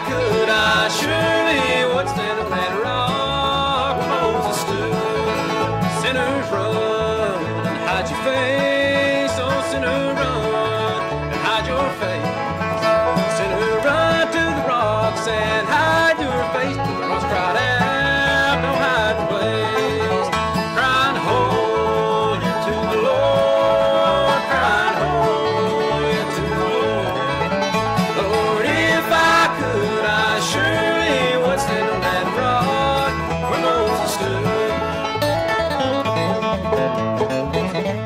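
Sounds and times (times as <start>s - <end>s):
man singing lead vocal: 0.0s - 12.4s, 13.2s - 35.3s
bluegrass band playing: 0.0s - 38.0s.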